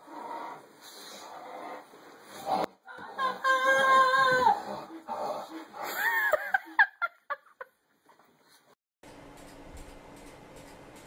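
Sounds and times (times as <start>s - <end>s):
boy yelping: 3.0s - 4.6s.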